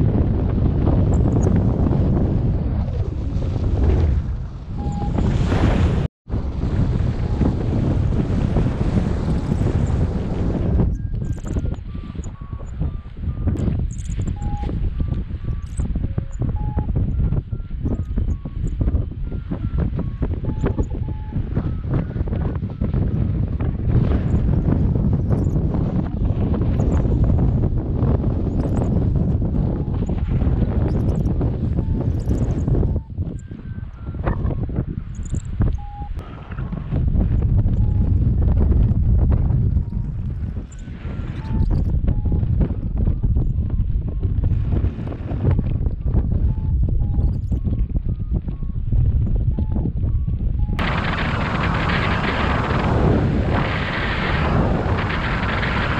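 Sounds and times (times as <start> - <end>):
wind buffeting microphone: 0.0 - 55.9
faint short beeps: 4.8 - 5.2, 10.8 - 21.8, 30.9 - 36.2, 40.7 - 42.5, 46.4 - 48.7.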